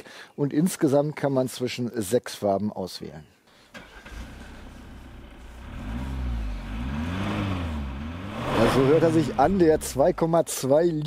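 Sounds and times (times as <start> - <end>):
diesel engine revving: 3.8 - 10.4.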